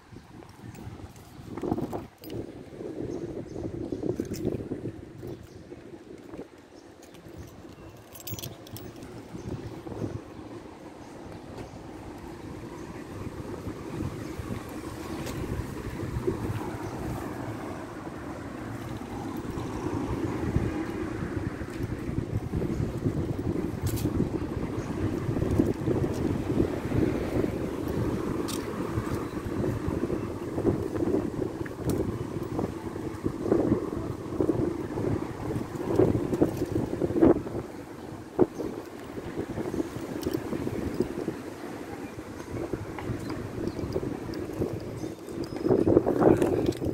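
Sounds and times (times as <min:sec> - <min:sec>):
faint street traffic: 0:00.0 - 0:46.9
wind buffeting microphone: 0:00.0 - 0:46.9.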